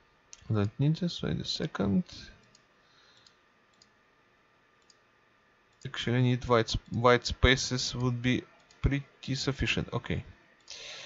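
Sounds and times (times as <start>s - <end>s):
faint computer mouse clicks: 2.4s - 4.0s, 4.8s - 5.0s.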